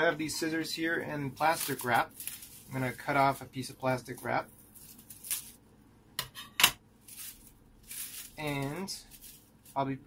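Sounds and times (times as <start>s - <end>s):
plastic cling wrap crackling: 1.2s - 5.6s, 7.0s - 10.0s.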